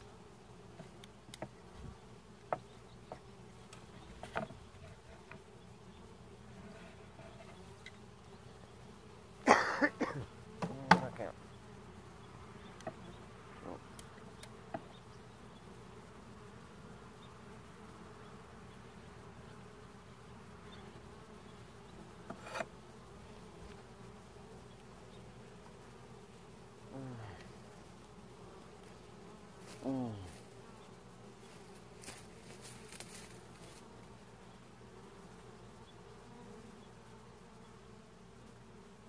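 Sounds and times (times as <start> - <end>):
bee flying past: 0.0 - 39.0
honeybees buzzing: 0.0 - 39.0.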